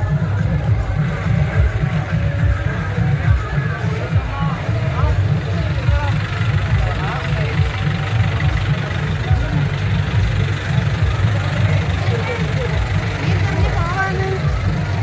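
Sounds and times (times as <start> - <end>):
crowd voices: 0.0 - 15.0
lorry engine rumbling: 0.0 - 15.0.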